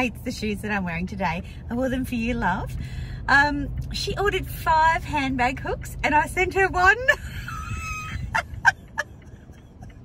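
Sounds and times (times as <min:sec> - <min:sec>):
car running hum: 0:00.0 - 0:10.0
woman laughing: 0:07.0 - 0:10.0.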